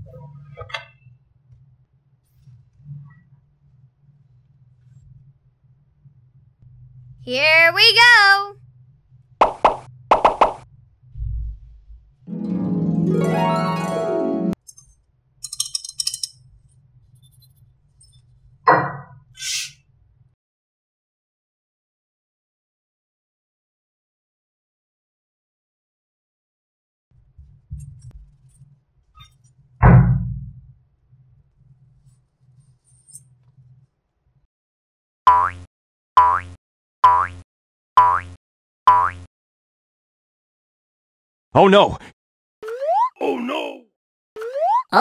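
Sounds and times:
faint low rumble: 0:10.8 - 0:12.2
dull thump: 0:29.8 - 0:30.6
cartoon pop with upward swoop: 0:42.6 - 0:43.2, 0:44.4 - 0:45.0.

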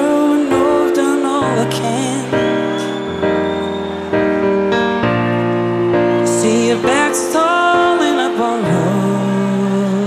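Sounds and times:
sustained keyboard chords: 0:00.0 - 0:10.0.

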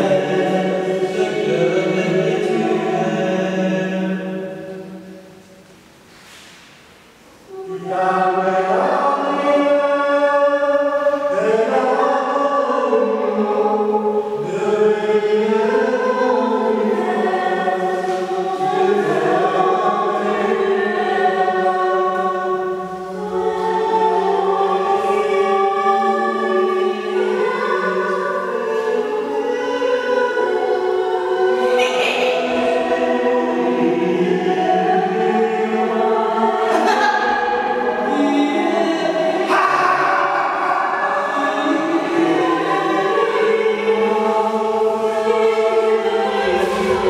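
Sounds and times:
choir singing held chords: 0:00.0 - 0:06.0, 0:07.2 - 0:47.0.

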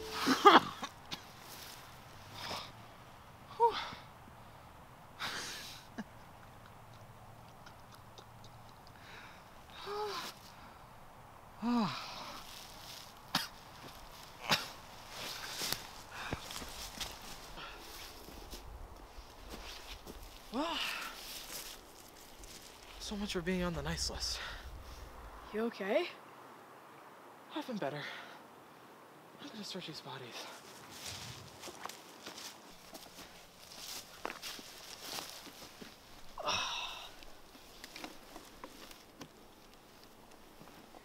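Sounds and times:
footsteps on dry leaves: 0:01.2 - 0:02.1, 0:12.2 - 0:25.3, 0:30.6 - 0:36.5.

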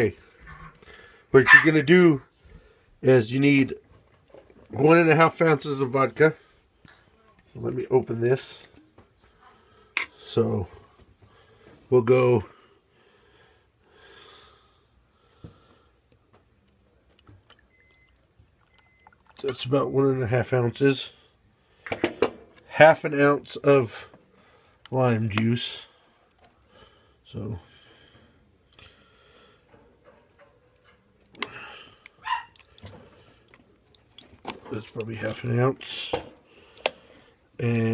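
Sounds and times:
faint breaths: 0:00.2 - 0:01.4, 0:02.3 - 0:03.0, 0:08.5 - 0:16.4, 0:21.0 - 0:22.6, 0:23.8 - 0:24.9, 0:25.7 - 0:33.9, 0:35.8 - 0:37.6.

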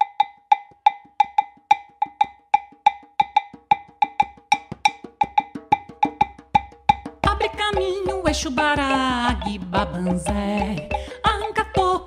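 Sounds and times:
high-pitched hand percussion clacks: 0:00.0 - 0:12.0.

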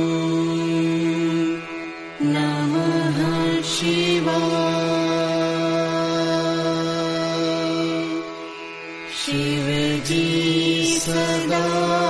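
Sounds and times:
steady drone: 0:00.0 - 0:12.0.

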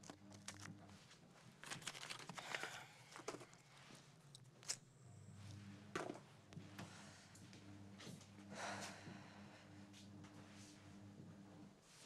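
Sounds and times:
faint low hum: 0:00.0 - 0:12.0
soft footsteps: 0:05.4 - 0:12.0.

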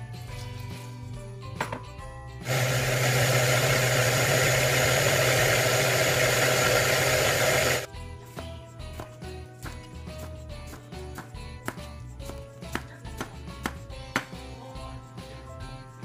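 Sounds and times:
soft background music: 0:00.0 - 0:02.4, 0:07.9 - 0:16.0
food processor motor running: 0:02.4 - 0:07.9.

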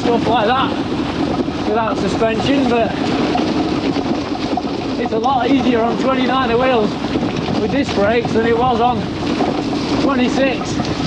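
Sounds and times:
bike tyres rolling on gravel: 0:00.0 - 0:11.0.

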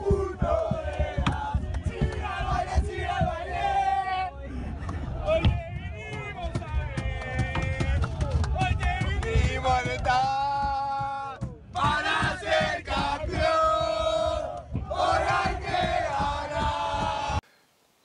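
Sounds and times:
crowd chanting and singing: 0:00.0 - 0:17.4
people shouting: 0:00.0 - 0:17.4.

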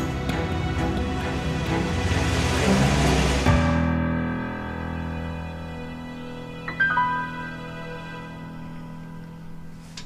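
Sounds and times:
car pulling away: 0:00.0 - 0:05.9
background music: 0:00.0 - 0:10.0.

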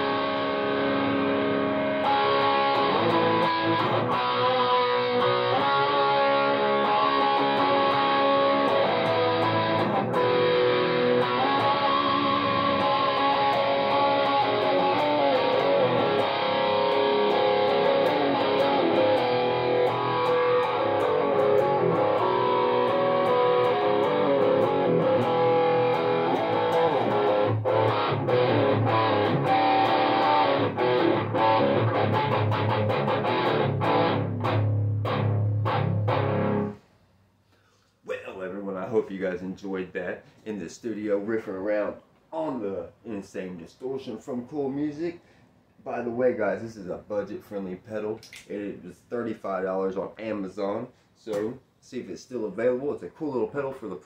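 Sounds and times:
distorted electric guitar riffing: 0:00.0 - 0:36.8.

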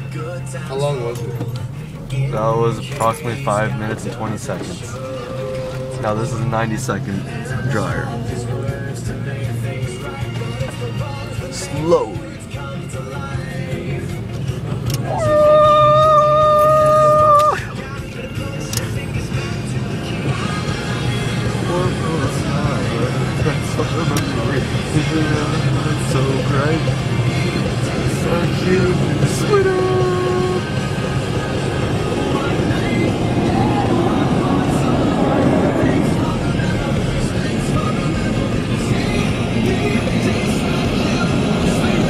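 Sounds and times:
music: 0:00.0 - 0:42.0
car wash air dryer blowing: 0:19.6 - 0:42.0.

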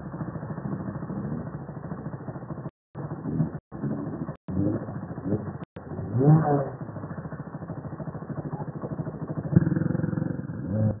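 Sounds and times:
quad bike engine idling: 0:00.0 - 0:11.0.

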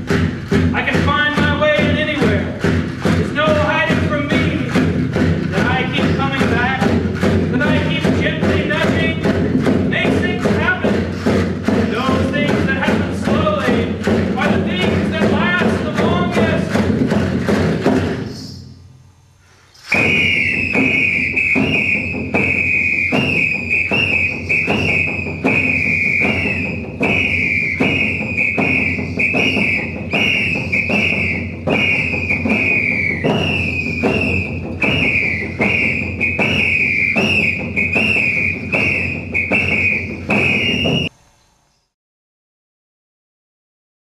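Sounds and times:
high-pitched whistle blasts: 0:18.3 - 0:18.9, 0:19.7 - 0:41.2.

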